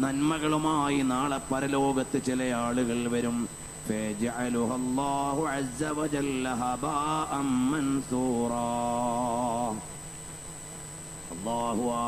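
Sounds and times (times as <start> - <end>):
man chanting: 0.0 - 9.9, 11.3 - 12.0.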